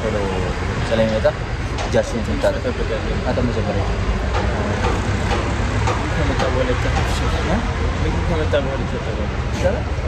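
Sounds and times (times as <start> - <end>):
low conversational voices: 0.0 - 10.0.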